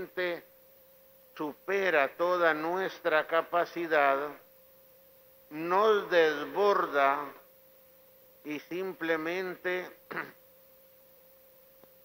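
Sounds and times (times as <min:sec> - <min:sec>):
man speaking: 0:00.0 - 0:00.5, 0:01.4 - 0:04.4, 0:05.5 - 0:07.4, 0:08.4 - 0:10.4
faint steady hum: 0:00.0 - 0:12.0
small click: 0:11.8 - 0:12.0.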